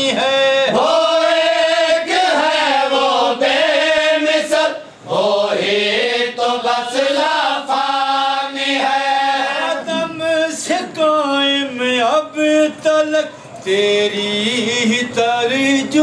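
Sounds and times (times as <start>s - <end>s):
men chanting a lament: 0.0s - 16.0s.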